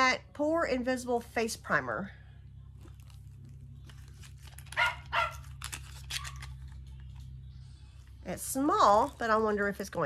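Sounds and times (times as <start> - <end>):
dog barking: 4.7 - 5.5.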